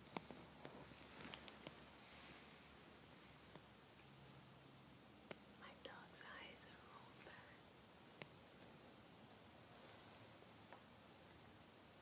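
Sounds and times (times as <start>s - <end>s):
faint whispering: 5.6s - 7.6s.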